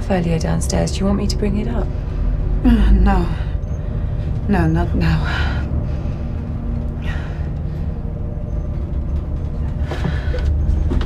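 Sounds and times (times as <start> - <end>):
low soundtrack rumble: 0.0 - 11.0.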